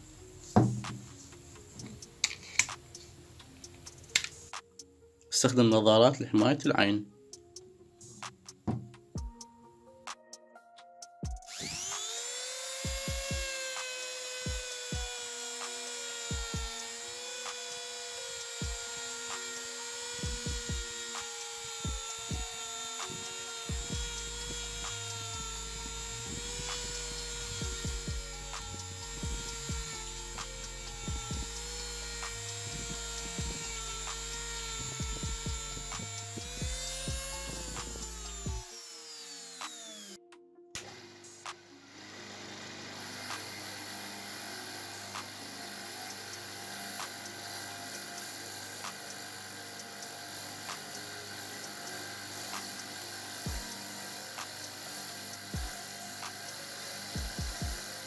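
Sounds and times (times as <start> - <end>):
rotary tool whining: 11.4 - 40.2, 40.8 - 58.0
bench motor hum: 11.5 - 40.2, 40.8 - 58.0.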